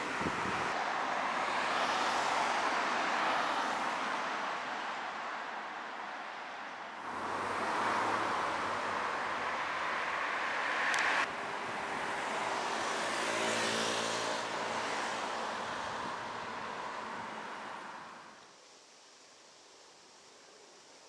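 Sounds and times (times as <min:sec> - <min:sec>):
cars passing: 0:00.0 - 0:18.4.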